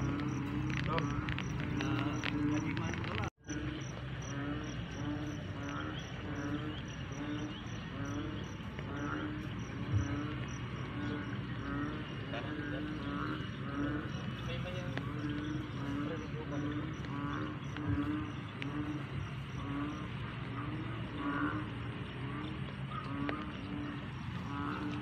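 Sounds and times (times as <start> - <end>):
frogs croaking: 0.0 - 25.0.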